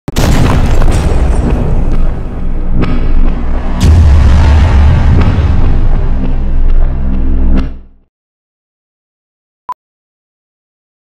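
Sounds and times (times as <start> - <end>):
deep rumbling boom: 0.1 - 8.0.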